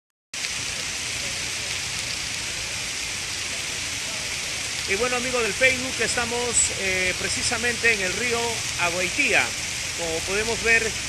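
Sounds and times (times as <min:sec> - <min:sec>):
heavy rain on a river: 0:00.4 - 0:11.0.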